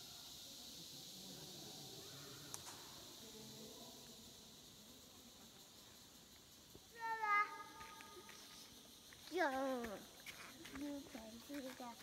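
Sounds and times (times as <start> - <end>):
faint background hiss: 0.0 - 12.0.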